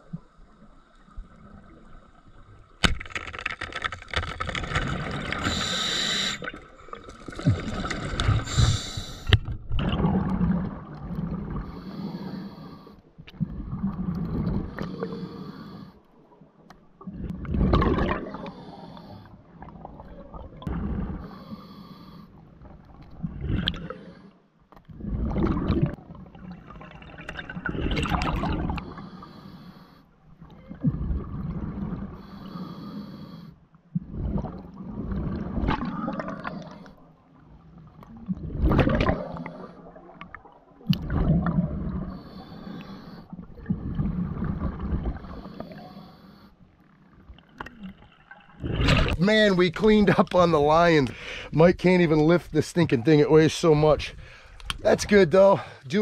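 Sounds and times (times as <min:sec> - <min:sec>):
bubbling exhale: 0:04.8 - 0:10.7, 0:51.1 - 0:51.6
regulator hissing inhale: 0:05.4 - 0:06.5, 0:08.4 - 0:09.4, 0:11.6 - 0:13.0, 0:14.7 - 0:16.0, 0:18.4 - 0:19.4, 0:21.2 - 0:22.4, 0:28.9 - 0:30.1, 0:32.2 - 0:33.6, 0:42.1 - 0:43.3, 0:45.2 - 0:46.6, 0:51.1 - 0:51.5.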